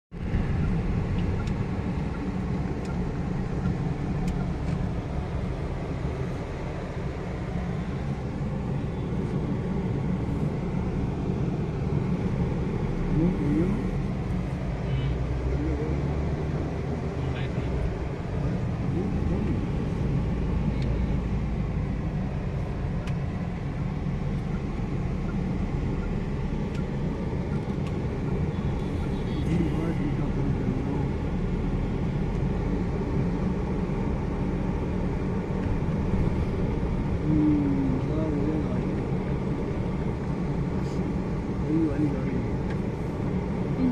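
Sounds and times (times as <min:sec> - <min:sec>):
car engine and tyres rumbling: 0:00.1 - 0:43.9.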